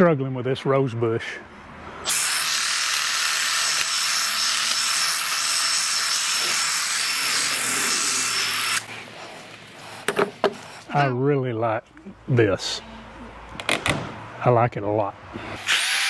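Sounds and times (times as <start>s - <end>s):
hedge trimmer cutting bush: 2.1s - 8.9s.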